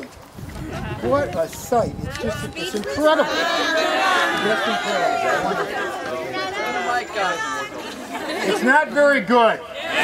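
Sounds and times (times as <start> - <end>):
large crowd chattering: 0.0 - 10.0.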